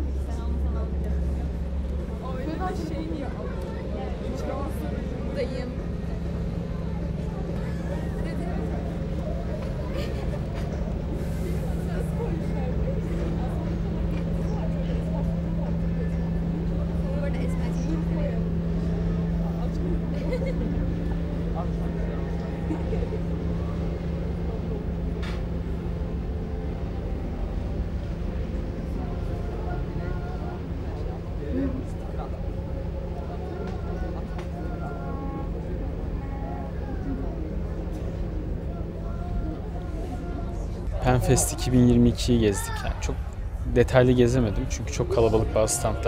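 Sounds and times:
indistinct voices: 0:00.0 - 0:46.0
low steady hum: 0:00.0 - 0:46.0
steady low rumble: 0:00.0 - 0:46.0.

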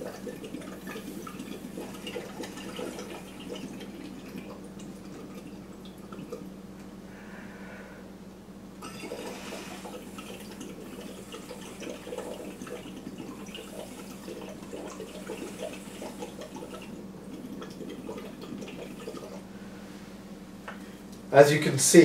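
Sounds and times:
bubbling water through straw: 0:00.0 - 0:06.6, 0:08.8 - 0:19.5.

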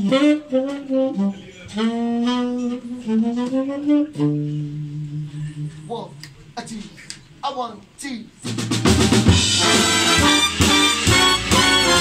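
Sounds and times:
saxophone playing jazz: 0:00.0 - 0:06.6, 0:08.8 - 0:12.0.

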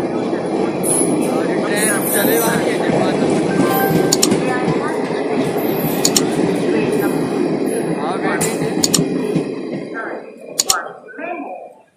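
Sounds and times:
train wheels rumbling on rails: 0:00.0 - 0:11.0
sharp clicks of train wheels: 0:00.9 - 0:09.9, 0:10.6 - 0:10.9.

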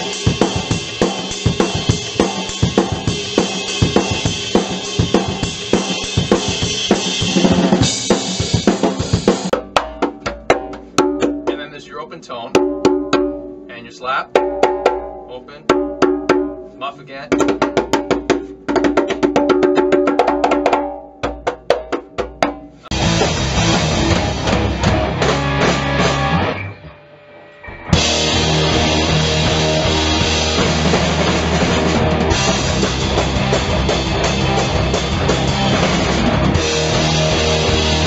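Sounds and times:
drum kit playing: 0:00.0 - 0:26.8, 0:27.5 - 0:38.0
conga tones and slaps: 0:09.3 - 0:11.8, 0:12.5 - 0:23.0
full band playing: 0:22.8 - 0:26.7, 0:27.9 - 0:38.0.

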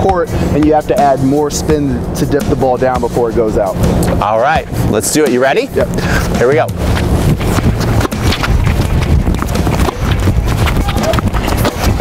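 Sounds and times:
low rumble: 0:01.3 - 0:12.0
racket hitting tennis balls: 0:05.8 - 0:12.0
tennis balls bouncing on court: 0:06.2 - 0:12.0.

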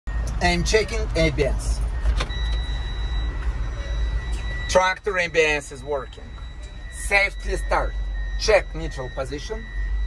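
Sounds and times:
high-pitched electronic tone: 0:00.1 - 0:10.0
low engine rumble: 0:00.1 - 0:10.0.

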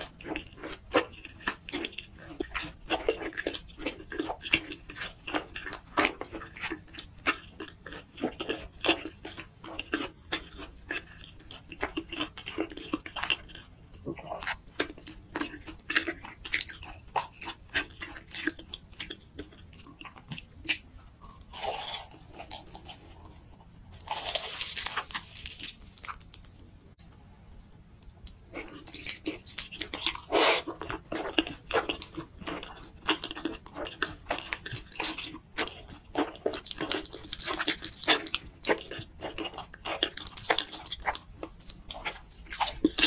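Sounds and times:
crunchy bite into fried food: 0:24.0 - 0:26.5.

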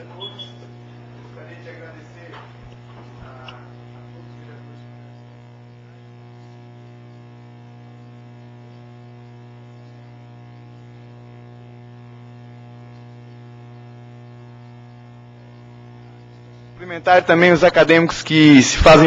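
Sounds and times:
electrical mains hum and buzz: 0:00.0 - 0:19.0.

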